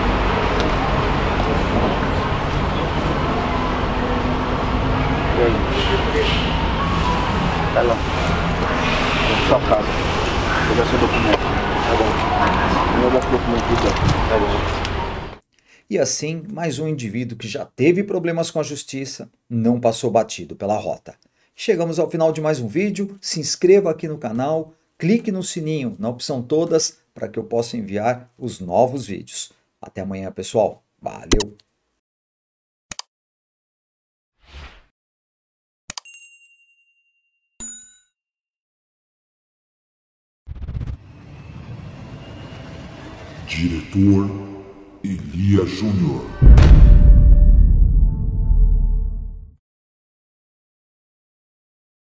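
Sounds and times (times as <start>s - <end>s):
men talking: 5.3s - 6.3s, 7.7s - 8.0s, 9.5s - 9.9s, 10.6s - 14.7s, 43.5s - 46.4s
bright ding: 36.0s - 38.2s
notification bell chime: 36.0s - 38.2s.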